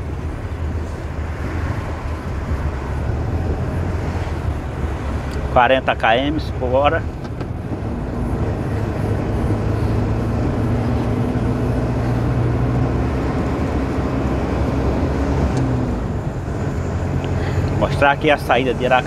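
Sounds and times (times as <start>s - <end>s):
road noise: 0.0s - 19.0s
truck engine running: 0.0s - 19.0s.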